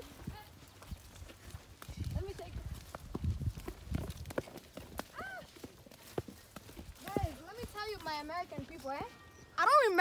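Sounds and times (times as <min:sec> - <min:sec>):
footsteps on mud: 0:00.0 - 0:10.0.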